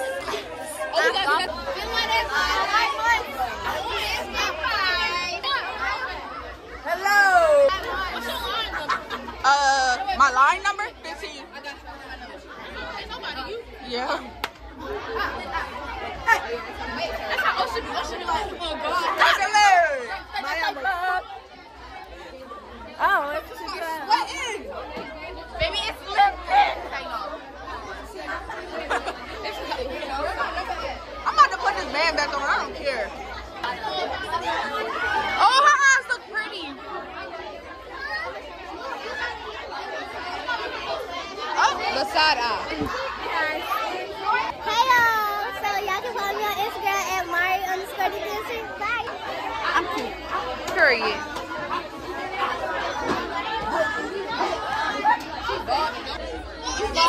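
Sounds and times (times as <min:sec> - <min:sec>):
crowd chatter: 0:00.0 - 0:57.0.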